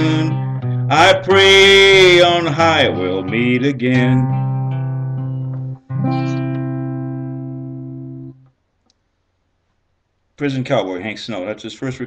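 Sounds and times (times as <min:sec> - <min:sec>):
guitar chord ringing: 0:00.0 - 0:08.4.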